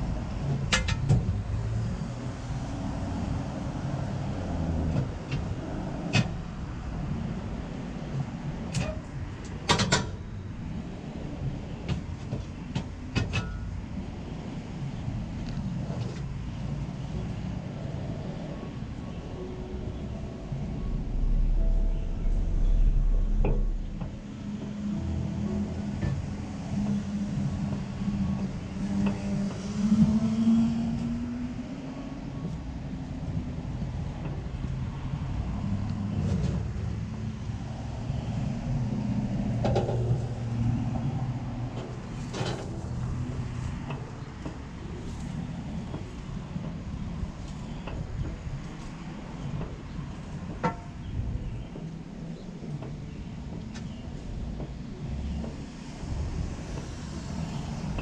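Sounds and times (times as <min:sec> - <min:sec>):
distant street traffic: 0:00.0 - 0:58.0
heavy vehicle engine rumble: 0:00.0 - 0:58.0.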